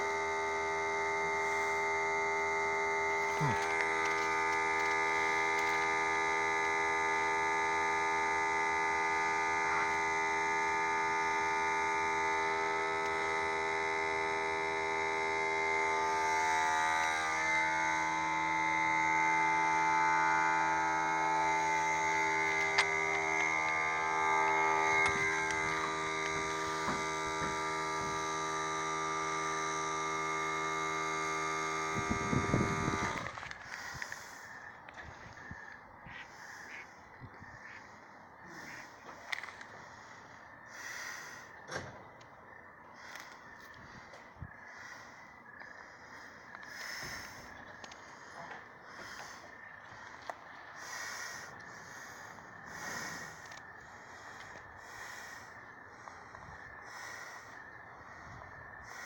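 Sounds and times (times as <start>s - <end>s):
loud steady machine hum: 0.0s - 59.0s.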